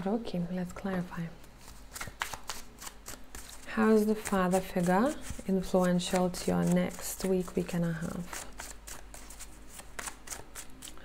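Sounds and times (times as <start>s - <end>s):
cards being shuffled: 0.6s - 11.0s.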